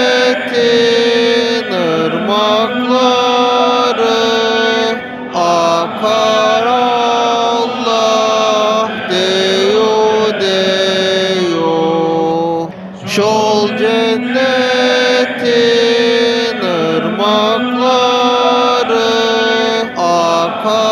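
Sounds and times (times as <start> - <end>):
person chanting devotional hymn: 0.0 - 20.9.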